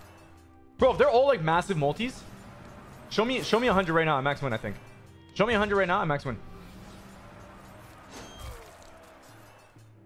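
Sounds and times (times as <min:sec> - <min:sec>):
quiet game music: 0:00.0 - 0:10.0.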